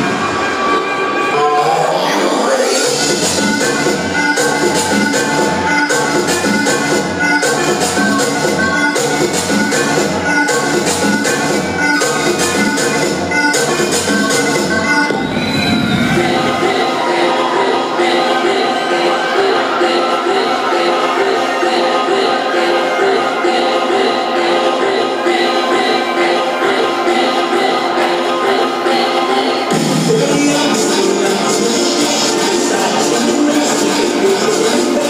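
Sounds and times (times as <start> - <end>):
dance music over sound system: 0.0 - 35.0.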